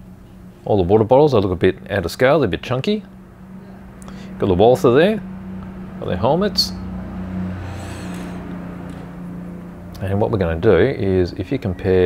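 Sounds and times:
faint high whirring: 0.0 - 12.0
low background hum: 0.0 - 12.0.

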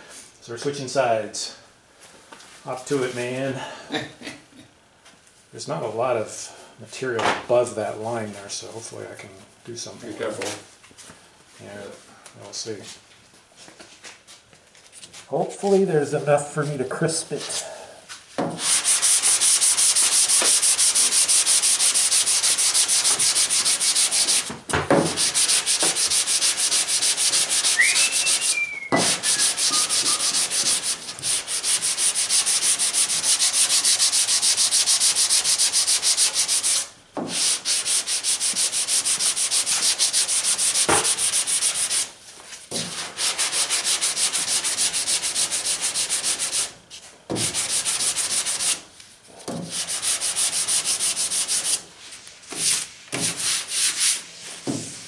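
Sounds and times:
sanding block rasping: 18.6 - 24.5, 25.2 - 42.1, 42.9 - 46.7, 47.4 - 48.8, 49.7 - 51.8, 52.6 - 54.3.

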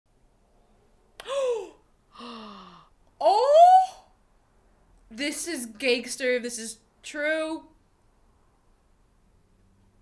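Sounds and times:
woman gasping: 1.2 - 3.0.

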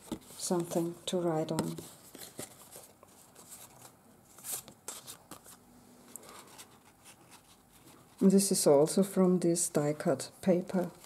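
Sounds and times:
paper and card rustling: 0.0 - 8.6.

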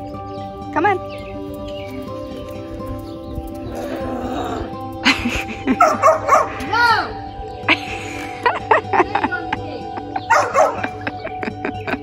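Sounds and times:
music with held tones: 0.0 - 12.0
dog barking: 5.8 - 6.6, 10.3 - 11.0.

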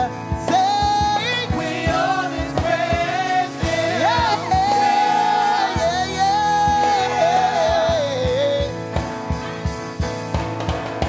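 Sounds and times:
backing singers: 0.0 - 8.8
band accompaniment: 0.0 - 11.0
woman singing lead: 3.6 - 8.7.

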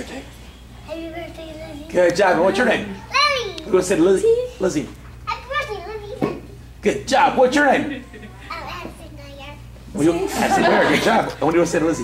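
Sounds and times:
child speaking: 0.8 - 4.6, 5.3 - 6.6, 8.3 - 9.8.

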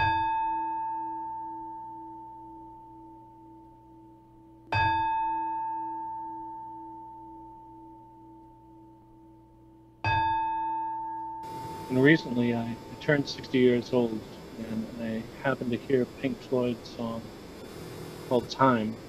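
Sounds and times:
meditation bell ringing: 0.0 - 9.4, 10.0 - 16.9.

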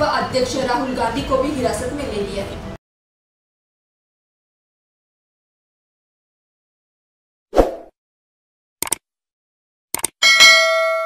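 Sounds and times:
notification bell ding: 10.2 - 11.0.

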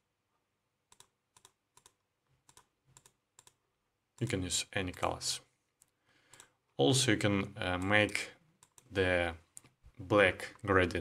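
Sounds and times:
computer mouse clicks: 0.9 - 3.6, 5.8 - 6.5, 8.6 - 8.9.

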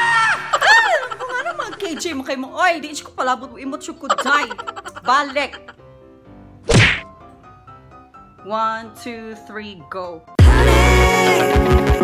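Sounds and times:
faint background music: 0.0 - 10.6
loud sudden whack: 6.7 - 7.1.

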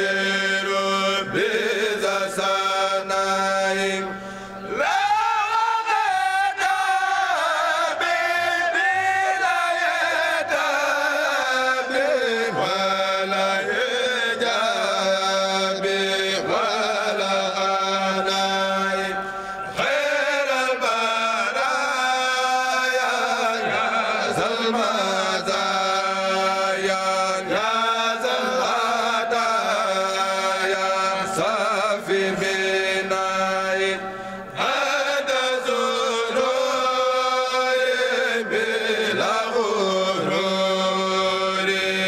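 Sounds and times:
male group chanting in unison: 0.0 - 42.0.

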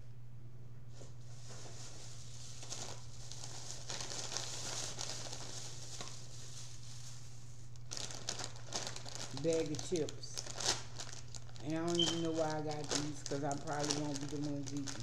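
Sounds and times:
plastic bag rustling: 0.9 - 15.0
chip bag crinkling: 1.4 - 15.0.

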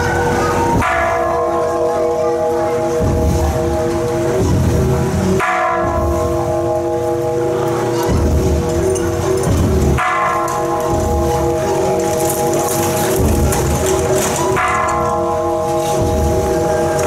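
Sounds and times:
struck metal percussion ringing: 0.0 - 17.0.

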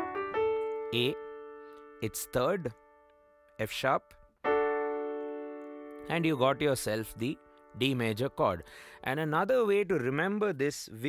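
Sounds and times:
piano chord ringing: 0.0 - 3.7, 4.4 - 10.1.

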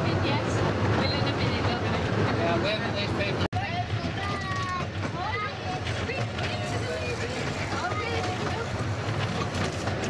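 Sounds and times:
miniature train rumbling on rails: 0.0 - 10.0.

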